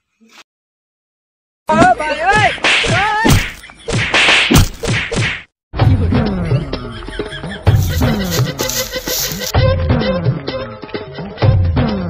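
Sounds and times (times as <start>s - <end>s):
whack sound effects: 2.6s - 5.5s.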